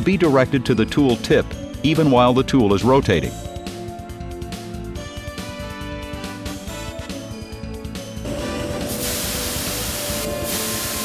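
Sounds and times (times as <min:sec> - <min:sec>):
background music: 0:00.0 - 0:11.0
coolant spraying hiss: 0:08.6 - 0:11.0.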